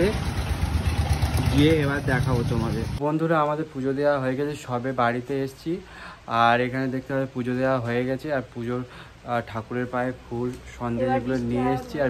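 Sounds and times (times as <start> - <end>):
person talking: 1.5 - 12.0.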